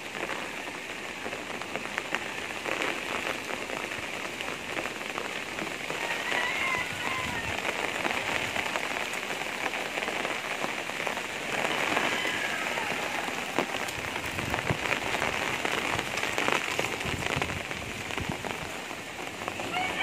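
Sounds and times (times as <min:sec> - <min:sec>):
heavy rain falling: 0:00.0 - 0:20.0.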